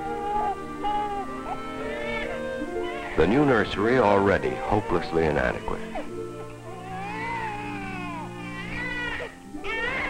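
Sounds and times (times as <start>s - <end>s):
baby crying: 0.0s - 10.0s
background music with low notes: 0.0s - 10.0s.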